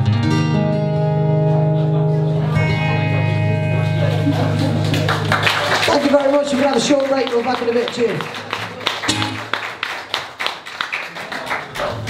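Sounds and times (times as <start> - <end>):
audience clapping: 3.8 - 12.0.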